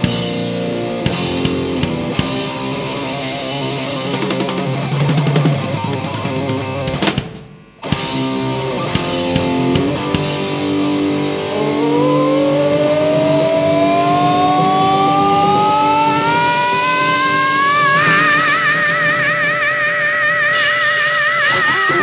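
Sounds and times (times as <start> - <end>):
hard rock band: 0.0 - 22.0
wordless sung wail: 10.9 - 22.0
cymbals: 13.1 - 22.0.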